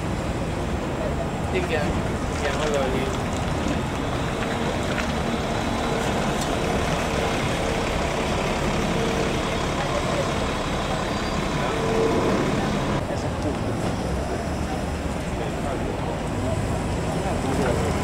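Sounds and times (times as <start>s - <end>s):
diesel bus engines: 0.0s - 18.0s
street traffic: 0.0s - 18.0s.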